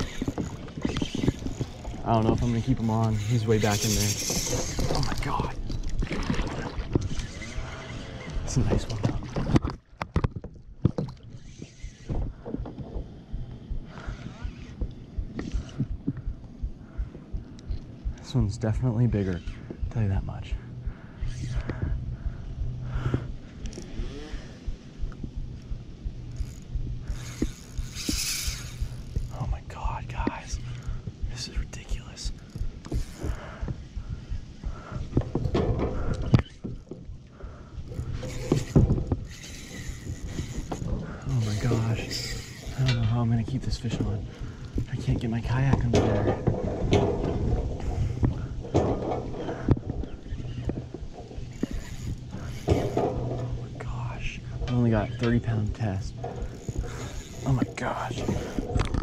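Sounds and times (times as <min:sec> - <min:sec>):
fishing reel clicking and ratcheting: 0:00.0 - 0:05.8, 0:26.3 - 0:29.4, 0:32.4 - 0:33.4, 0:37.8 - 0:43.1, 0:51.4 - 0:53.7, 0:55.6 - 0:59.0.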